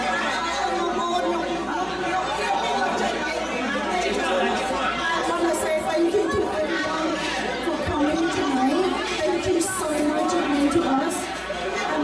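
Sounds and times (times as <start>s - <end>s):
crowd chatter in a hall: 0.0s - 12.0s.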